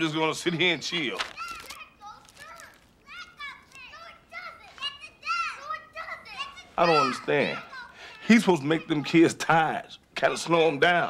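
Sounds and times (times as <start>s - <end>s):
children calling out and shrieking: 0.9s - 9.3s.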